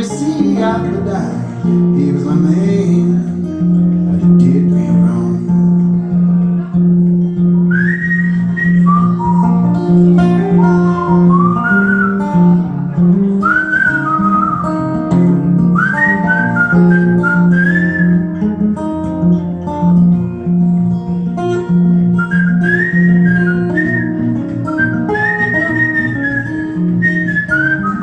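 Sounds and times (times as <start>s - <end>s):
fingerpicked acoustic guitar: 0.0s - 28.0s
man whistling a melody: 7.6s - 12.7s, 13.3s - 18.4s, 22.1s - 28.0s.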